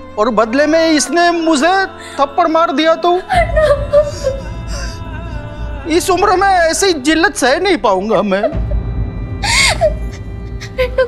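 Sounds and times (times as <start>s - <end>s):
low background music: 0.0s - 11.0s
woman sobbing gasp: 3.2s - 5.4s, 9.4s - 11.0s.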